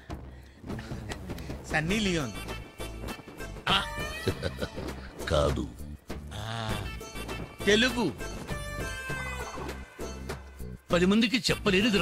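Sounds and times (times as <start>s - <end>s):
film background music: 0.0s - 12.0s.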